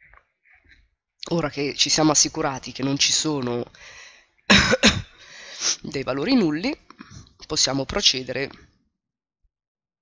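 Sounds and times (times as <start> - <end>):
man coughing: 4.5 - 5.3.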